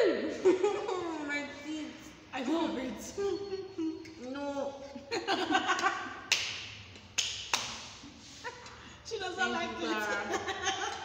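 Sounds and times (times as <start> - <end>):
sharp hand claps: 5.7 - 8.0.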